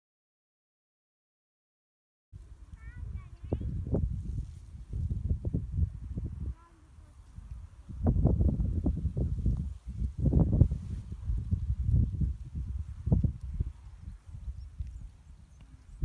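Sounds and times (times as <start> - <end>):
wind buffeting microphone: 2.4 - 16.0.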